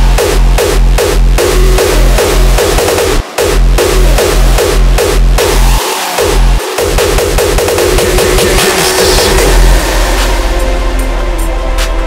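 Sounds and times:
distorted hardstyle sound: 0.0s - 12.0s
hardstyle kick drums: 0.0s - 12.0s.

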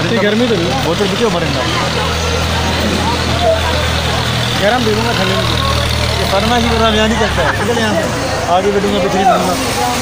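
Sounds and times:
faint voices: 0.0s - 10.0s
vehicle engine idling: 0.0s - 10.0s.

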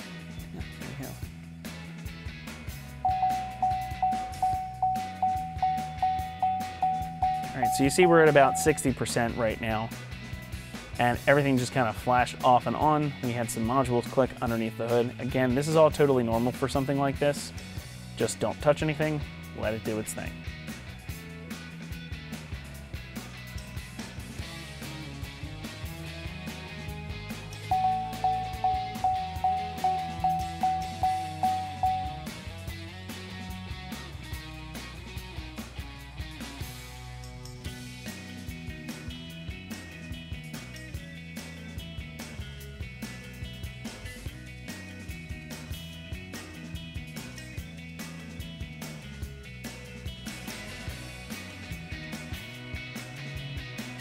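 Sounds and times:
background music: 0.0s - 54.0s
electronic warning chime: 3.0s - 9.0s, 27.7s - 32.4s.

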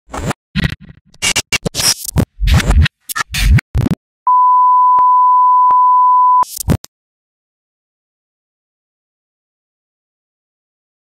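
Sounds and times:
loud steady beep tone: 4.3s - 6.5s.

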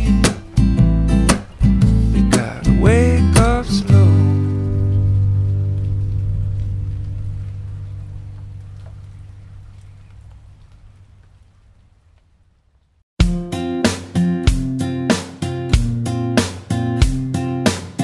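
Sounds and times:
acoustic guitar chord ringing: 0.0s - 8.0s, 13.2s - 18.0s
sliding guitar notes: 0.0s - 9.2s, 13.2s - 18.0s.

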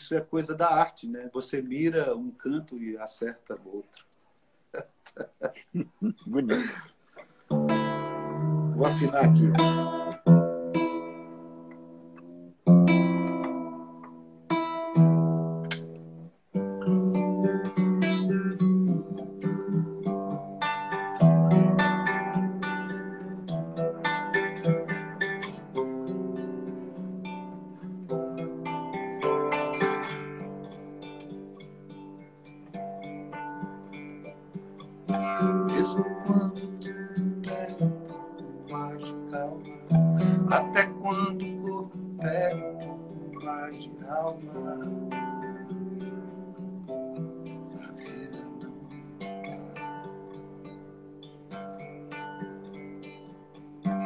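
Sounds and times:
acoustic guitar playing: 0.0s - 3.9s, 4.6s - 54.0s
acoustic guitar chords ringing: 7.5s - 54.0s.

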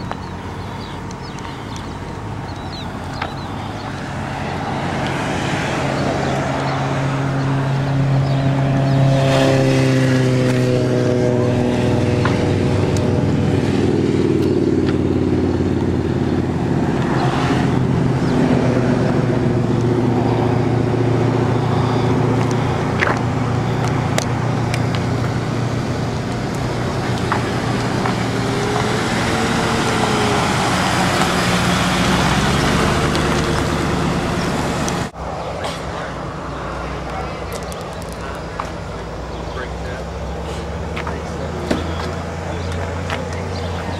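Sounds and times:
car engines droning: 0.0s - 43.9s
engine revving: 0.0s - 43.9s.

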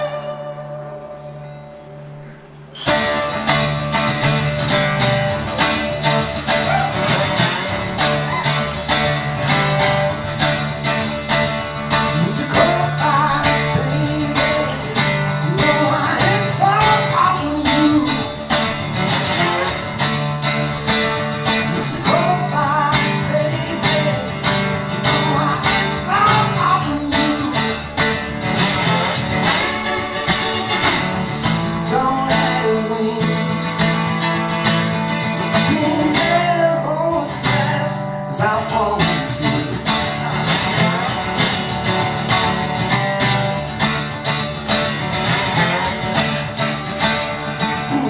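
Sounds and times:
resonator guitar strumming: 0.0s - 48.0s
man singing: 11.9s - 18.8s, 21.5s - 28.1s, 30.3s - 34.2s, 35.4s - 40.8s, 47.6s - 48.0s.

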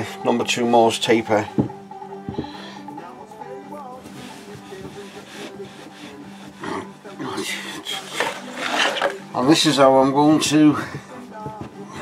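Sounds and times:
background music: 0.0s - 12.0s
screw rasping against wood: 4.6s - 6.8s, 7.7s - 9.3s.

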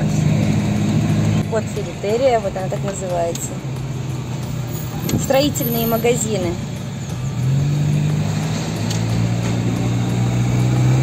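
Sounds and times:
car engine low hum: 0.0s - 11.0s.

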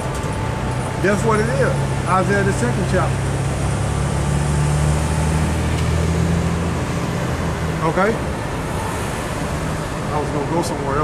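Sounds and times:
street traffic engine hum: 0.0s - 11.0s.

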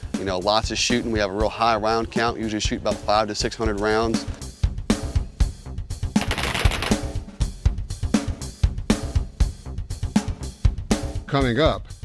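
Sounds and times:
rifle shots: 6.2s - 7.2s
drum-heavy music: 6.2s - 8.4s.

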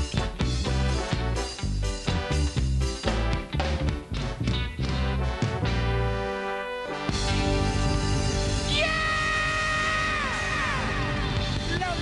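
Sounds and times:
live reggae band playing: 0.0s - 12.0s.

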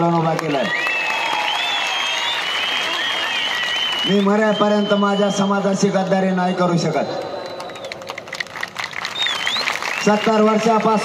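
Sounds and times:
crowd clapping: 0.0s - 6.2s, 6.8s - 11.0s
high whistles: 0.7s - 5.8s, 6.8s - 8.2s, 9.0s - 10.6s.

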